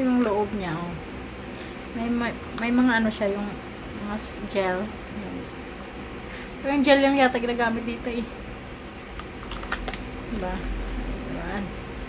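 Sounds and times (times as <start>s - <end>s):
foil pouch crinkling: 9.2s - 11.1s.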